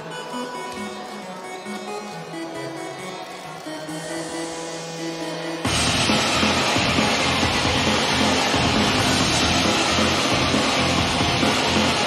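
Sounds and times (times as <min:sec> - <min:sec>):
upbeat pop song through speaker: 0:00.0 - 0:12.0.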